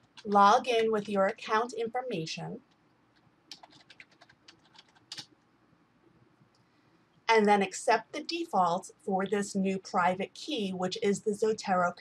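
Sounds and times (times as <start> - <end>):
typing on computer keyboard: 0.0 - 0.4, 2.7 - 5.4.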